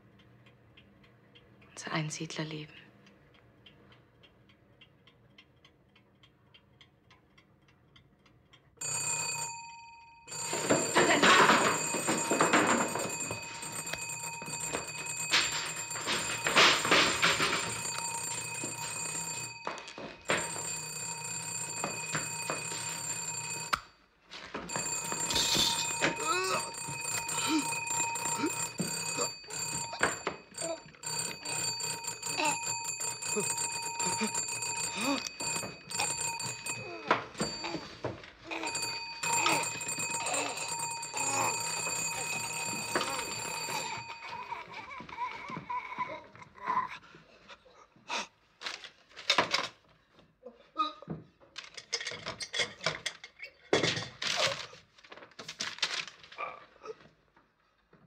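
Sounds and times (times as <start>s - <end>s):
electric bell ringing: 8.8s - 23.8s, 24.7s - 44.8s.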